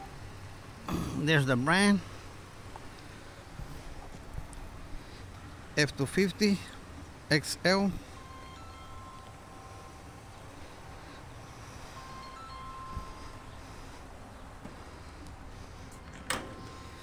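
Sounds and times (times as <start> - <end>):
soft chime-like ringing: 8.0 - 10.4, 11.8 - 13.6
compartment door swinging open: 16.0 - 16.8
metal latch click: 16.1 - 16.7.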